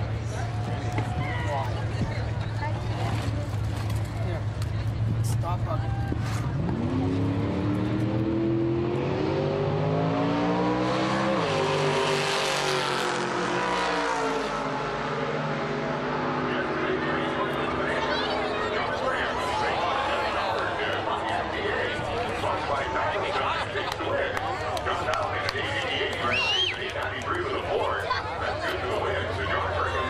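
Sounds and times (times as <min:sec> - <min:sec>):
crowd voices: 0:00.0 - 0:30.0
drag racing car engine accelerating: 0:06.4 - 0:30.0.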